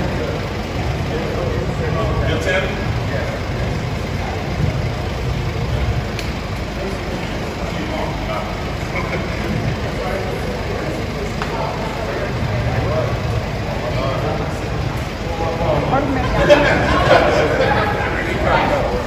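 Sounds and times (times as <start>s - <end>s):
group of people talking: 0.0s - 19.0s
steady low rumble: 0.0s - 19.0s.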